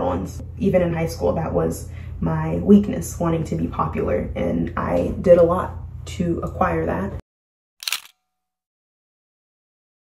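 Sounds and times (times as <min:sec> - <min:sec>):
camera shutter click: 0:07.8 - 0:08.2.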